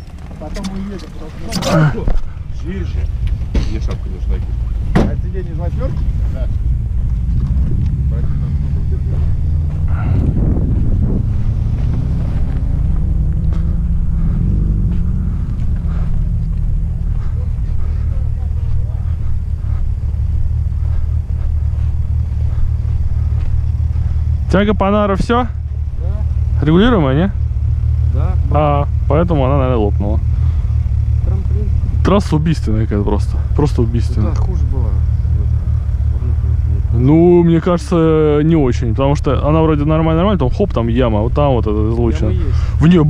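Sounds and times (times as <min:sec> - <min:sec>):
car engine running: 0:00.0 - 0:43.0.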